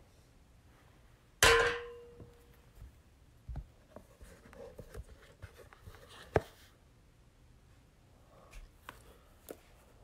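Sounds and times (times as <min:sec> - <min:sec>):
sharp ringing clang: 0:01.4 - 0:02.3.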